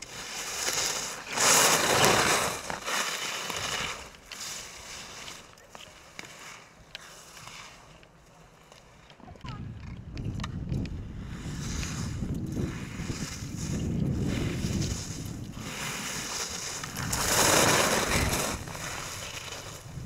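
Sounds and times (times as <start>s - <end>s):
ski edges scraping snow: 0.0s - 9.1s, 11.2s - 20.0s
wind rumble on microphone: 9.3s - 20.0s.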